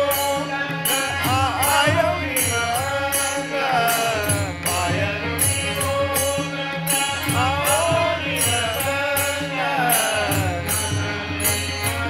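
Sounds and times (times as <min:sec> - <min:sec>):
men singing together: 0:00.0 - 0:12.0
regular percussive beat: 0:00.0 - 0:12.0.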